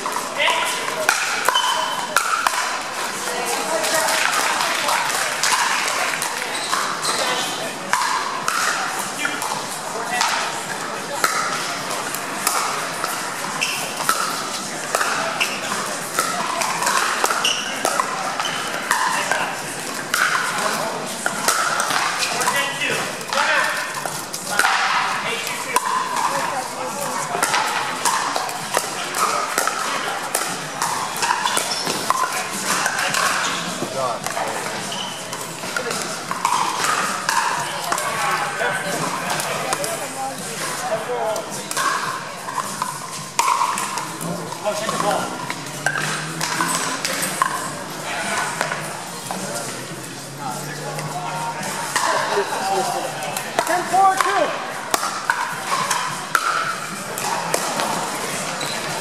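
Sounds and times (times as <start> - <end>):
crowd and player chatter: 0.0 - 59.0
pickleball paddles hitting balls: 0.0 - 59.0.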